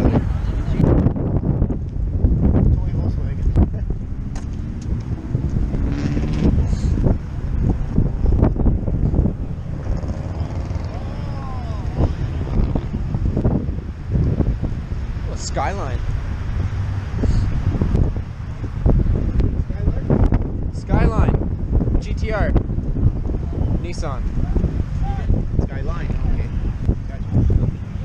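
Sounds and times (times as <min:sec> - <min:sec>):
wind buffeting microphone: 0:00.0 - 0:28.0.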